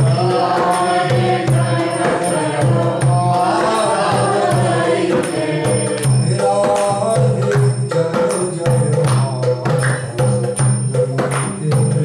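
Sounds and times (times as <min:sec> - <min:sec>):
hand percussion rhythm: 0:00.0 - 0:12.0
man singing devotional chant: 0:00.0 - 0:12.0.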